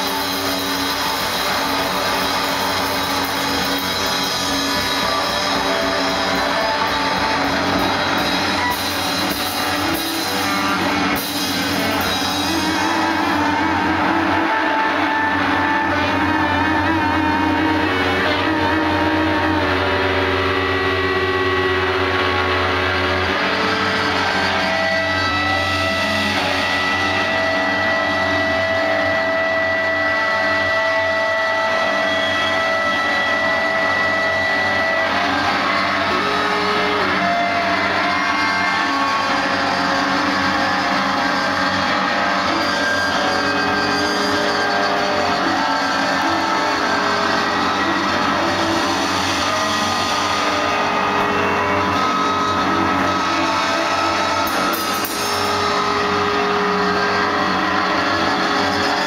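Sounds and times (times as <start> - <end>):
high held guitar tone: 0.0 - 59.0
noise rock band playing loud: 0.0 - 59.0.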